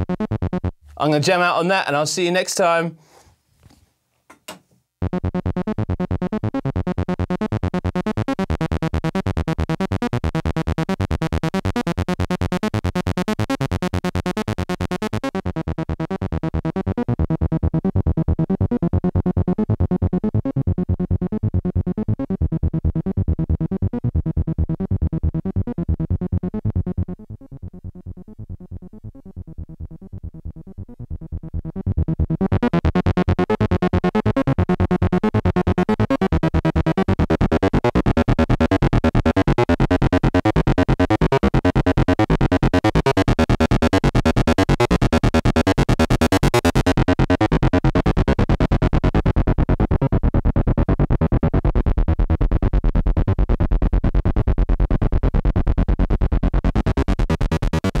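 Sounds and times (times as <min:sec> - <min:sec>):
synthesizer sequencer pattern: 0:00.0 - 0:00.8, 0:05.0 - 0:58.0.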